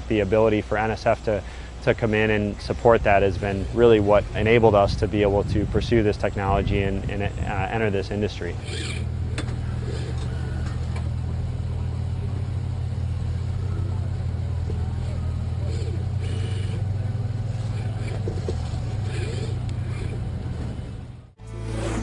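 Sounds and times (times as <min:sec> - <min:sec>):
machinery engine drone: 0:00.0 - 0:22.0.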